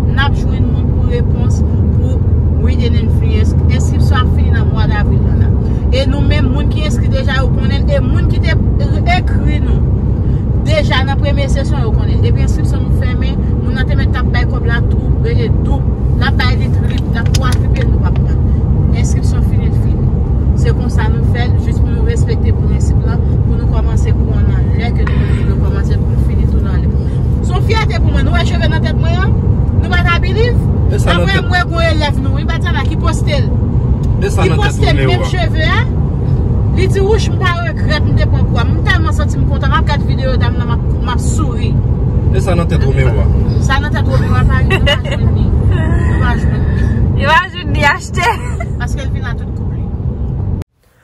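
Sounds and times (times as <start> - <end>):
road and engine rumble: 0.0 - 51.0
voices talking: 20.6 - 35.9, 36.8 - 49.7.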